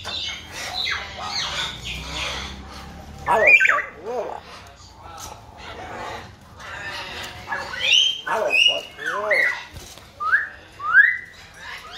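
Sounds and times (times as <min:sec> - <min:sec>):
bird calling and whistling: 0:03.2 - 0:04.0, 0:07.6 - 0:11.9.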